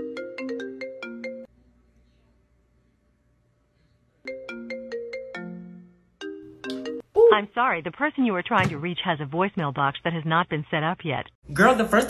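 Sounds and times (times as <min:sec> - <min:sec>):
mobile phone ringtone melody: 0:00.0 - 0:01.5, 0:04.3 - 0:07.0.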